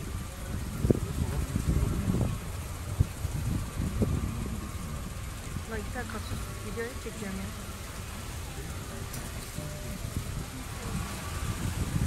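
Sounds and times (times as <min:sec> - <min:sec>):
car driving slowly: 0:00.0 - 0:12.0.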